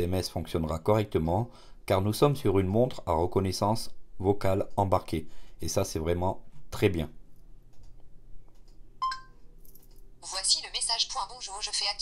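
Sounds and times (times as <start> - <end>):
smartwatch electronic beep: 9.0 - 9.4.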